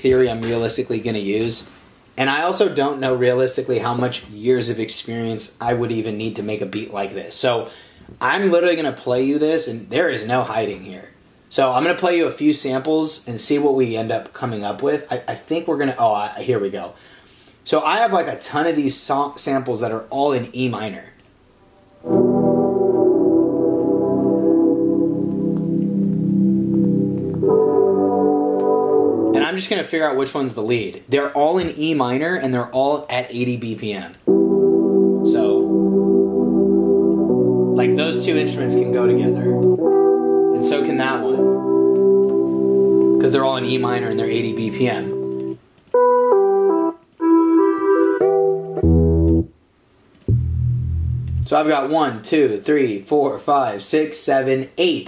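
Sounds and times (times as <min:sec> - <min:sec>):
melodic sample loops: 0:22.0 - 0:29.4, 0:34.3 - 0:49.5, 0:50.3 - 0:51.5
sustained music chords: 0:22.0 - 0:29.4, 0:34.3 - 0:49.5, 0:50.3 - 0:51.5.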